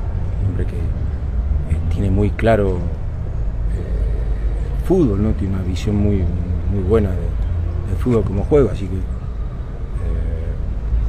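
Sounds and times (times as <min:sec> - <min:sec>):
faint voice: 0:03.7 - 0:04.9, 0:09.9 - 0:10.8.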